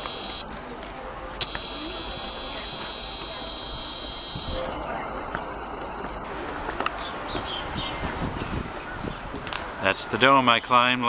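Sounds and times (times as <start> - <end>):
murmur of distant voices: 0.0 - 11.0
zoom motor whine: 1.4 - 4.6.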